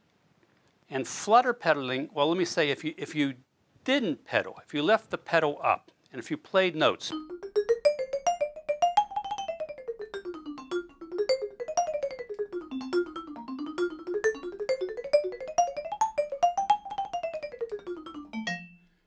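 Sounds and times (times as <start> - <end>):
staccato vibraphone notes: 7.1 - 18.9.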